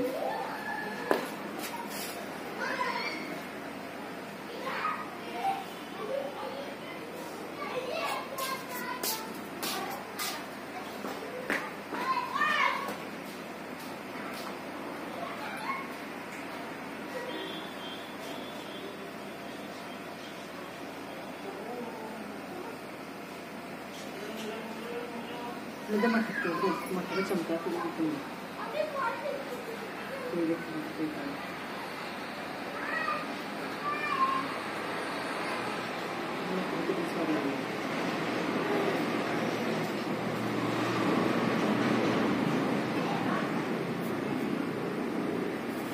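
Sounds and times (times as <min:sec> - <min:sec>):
children's voices: 0:00.0 - 0:03.6, 0:04.3 - 0:13.1, 0:14.3 - 0:16.2, 0:25.8 - 0:30.7, 0:31.4 - 0:36.7, 0:42.7 - 0:45.9.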